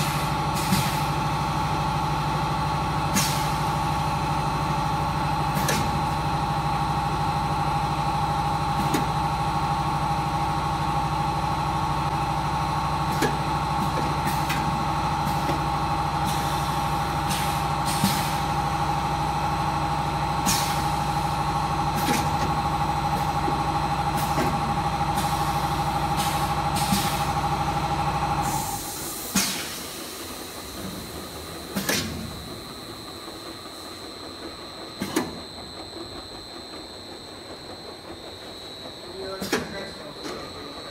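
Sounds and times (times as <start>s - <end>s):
filling machine humming: 0.0s - 40.9s
sharp hissing knocks: 28.9s - 30.2s
sharp mechanical clicks and knocks: 35.0s - 35.4s.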